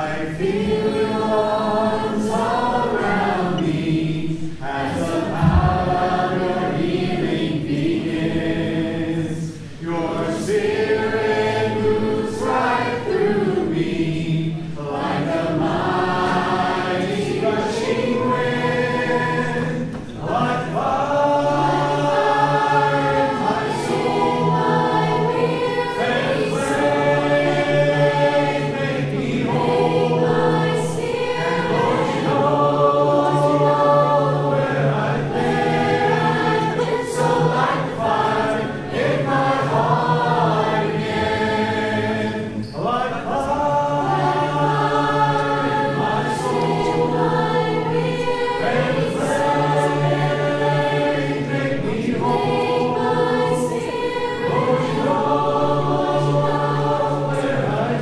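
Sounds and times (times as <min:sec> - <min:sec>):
congregation singing: 0:00.0 - 0:58.0.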